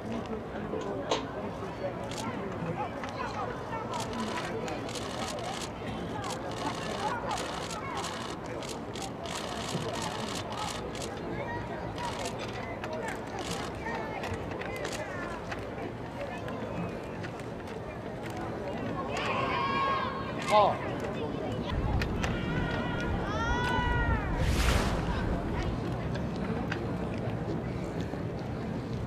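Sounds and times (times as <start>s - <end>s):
distant indistinct voices: 0.0s - 29.0s
steady background hum: 0.0s - 29.0s.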